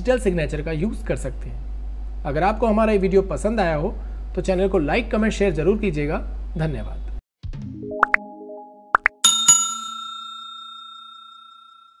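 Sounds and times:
bell ding: 0:09.2 - 0:12.0.

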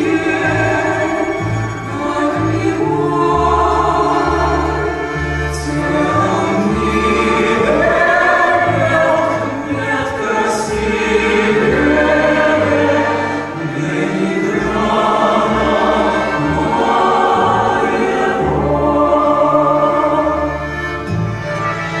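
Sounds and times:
mixed choir singing: 0:00.0 - 0:21.1.

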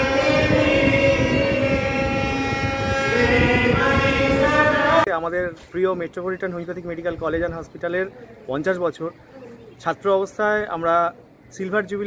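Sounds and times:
harmonium chords: 0:00.0 - 0:05.1.

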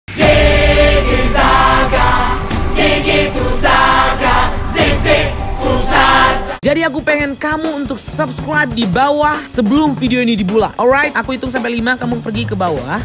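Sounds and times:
chorus of singing voices: 0:00.1 - 0:06.6.

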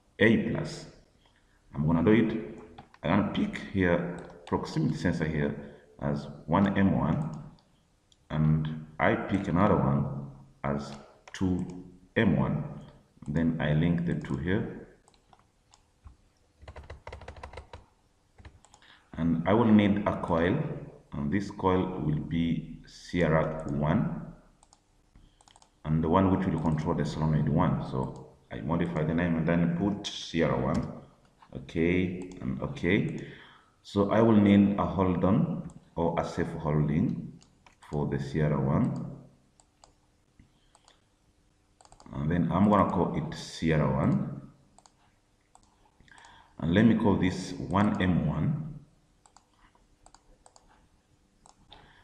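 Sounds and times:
computer mouse clicks: 0:02.6 - 0:03.0, 0:04.2 - 0:04.8, 0:14.2 - 0:19.0, 0:24.6 - 0:25.8, 0:37.4 - 0:38.0, 0:38.8 - 0:40.0, 0:40.6 - 0:41.0, 0:41.8 - 0:42.1, 0:44.8 - 0:46.4, 0:49.2 - 0:52.0
keyboard keystrokes: 0:16.6 - 0:17.8.

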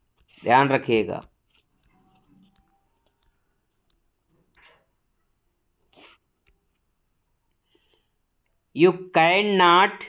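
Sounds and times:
person speaking: 0:00.0 - 0:04.7, 0:08.6 - 0:10.0
stylus tapping tablet screen: 0:00.0 - 0:08.7.

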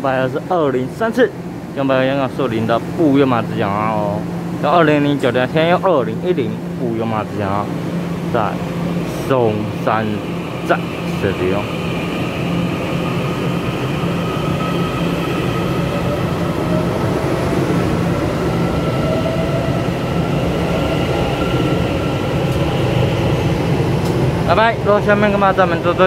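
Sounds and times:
train wheels rumbling: 0:00.0 - 0:26.0
electric traction motor whine: 0:03.5 - 0:26.0.

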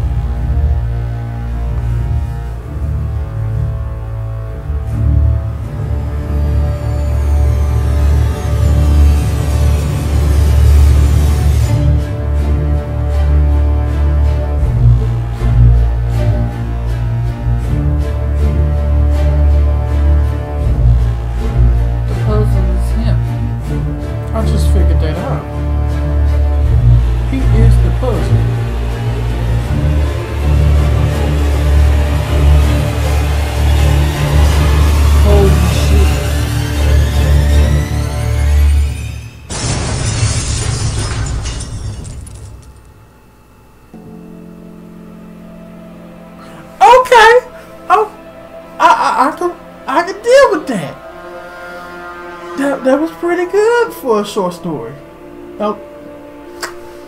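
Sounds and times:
horror film music: 0:00.0 - 0:57.0.

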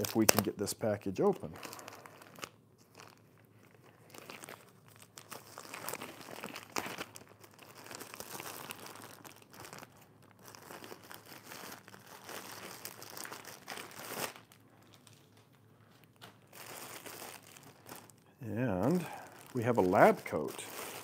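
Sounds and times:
plastic bag tearing crack: 0:00.0 - 0:00.5, 0:04.0 - 0:15.2, 0:16.2 - 0:18.2
plastic bag crinkling: 0:00.0 - 0:21.0.

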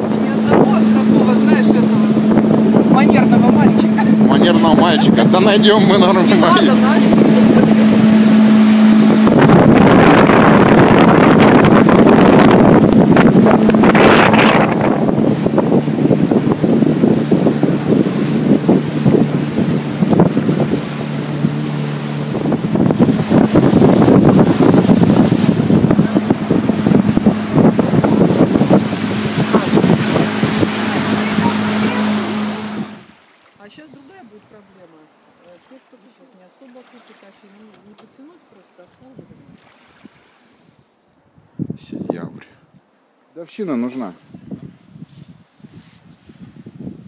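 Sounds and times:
wind buffeting microphone: 0:00.0 - 0:34.6, 0:41.3 - 0:42.9, 0:44.2 - 0:47.0
motorboat engine running: 0:00.0 - 0:38.4
water rushing along hull: 0:00.0 - 0:47.0.

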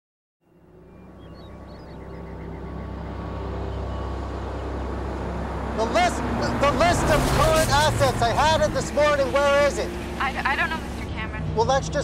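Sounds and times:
car engine running: 0:01.2 - 0:12.0.

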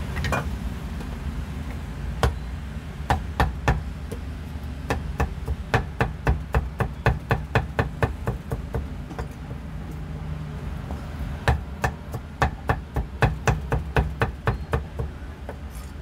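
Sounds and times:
cleaver chopping on wooden board: 0:04.9 - 0:09.2, 0:11.4 - 0:15.6.

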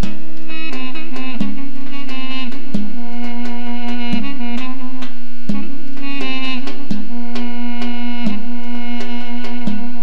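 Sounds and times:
held drone note: 0:00.0 - 0:10.0
keyboard synthesizer melody: 0:00.0 - 0:10.0
percussion hits: 0:00.0 - 0:10.0.

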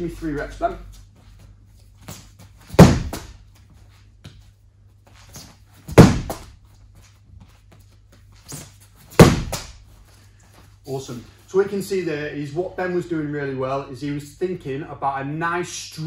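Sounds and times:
medicine ball thudding on padded wall: 0:02.7 - 0:03.4, 0:05.9 - 0:06.6, 0:09.1 - 0:09.8
quieter thumps: 0:02.8 - 0:03.4, 0:05.9 - 0:06.5, 0:09.2 - 0:09.8.

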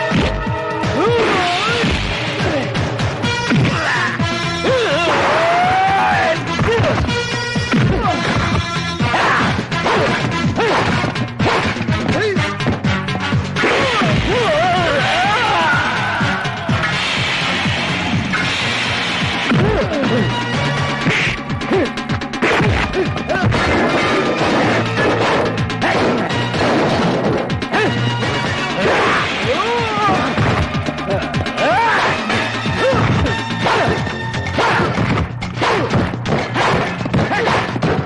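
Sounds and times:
background music: 0:00.0 - 0:38.0
punch impacts: 0:22.4 - 0:27.4
crashing fight blows: 0:22.4 - 0:27.5.

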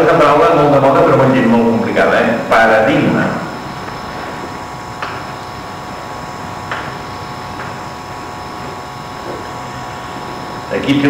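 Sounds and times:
faint whining tones: 0:00.0 - 0:11.0.

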